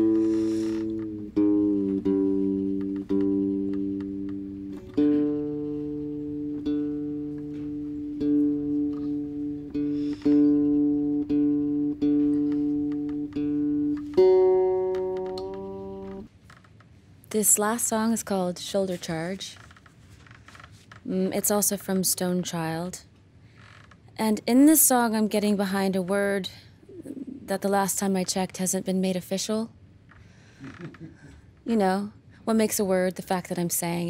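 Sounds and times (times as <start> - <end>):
electric guitar being tuned: 0.0 - 16.3.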